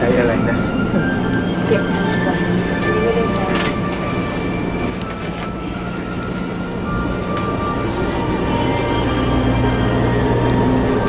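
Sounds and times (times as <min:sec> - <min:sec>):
faint background music: 0:00.0 - 0:11.0
train carriage rumble and hum: 0:00.0 - 0:11.0.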